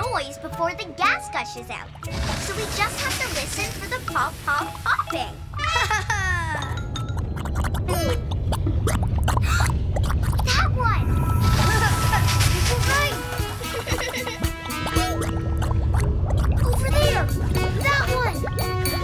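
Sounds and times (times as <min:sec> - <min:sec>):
background music: 0:00.0 - 0:09.2, 0:11.0 - 0:19.0
cartoon popping: 0:06.6 - 0:18.7.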